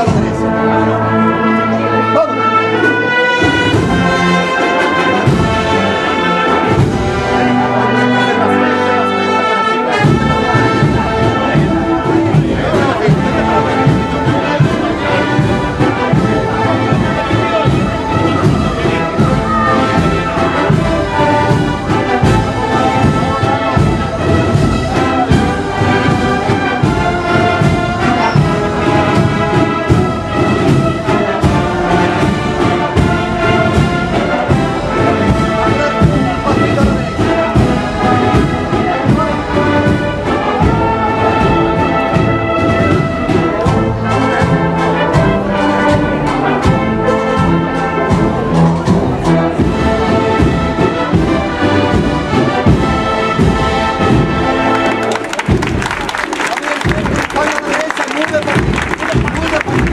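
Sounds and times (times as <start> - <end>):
steady drum beat: 0.0 - 1.4, 2.8 - 59.9
trumpets and trombones melody: 0.0 - 59.9.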